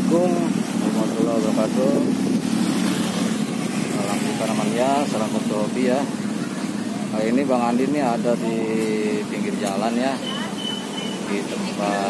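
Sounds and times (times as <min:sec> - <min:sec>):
motor scooters passing: 0:00.0 - 0:12.0.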